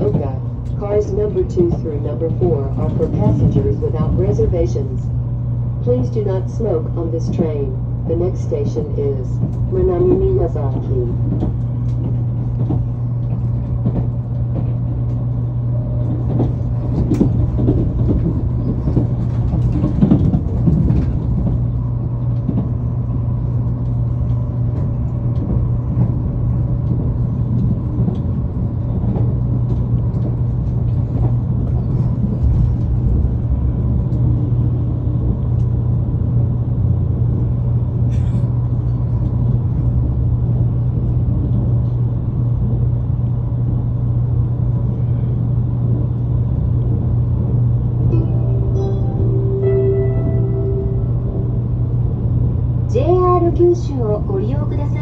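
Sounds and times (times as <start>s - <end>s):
constant hum: 0.0s - 55.0s
train wheels rumbling on rails: 0.0s - 55.0s.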